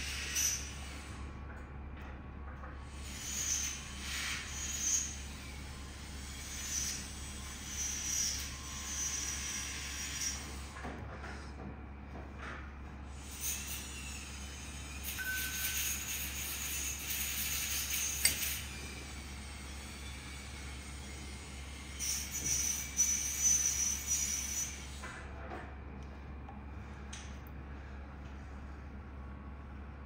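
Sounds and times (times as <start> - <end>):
low steady hum: 24.0 - 30.0.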